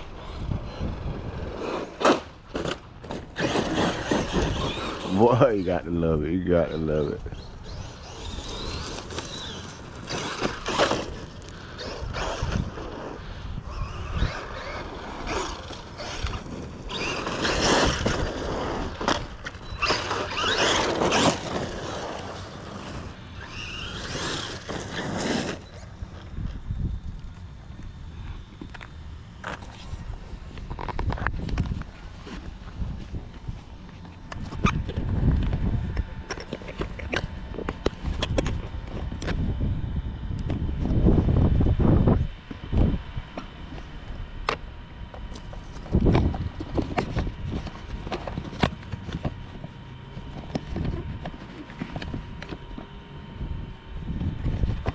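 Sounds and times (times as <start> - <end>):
rc truck motor revving on dirt: 0.0 - 54.9.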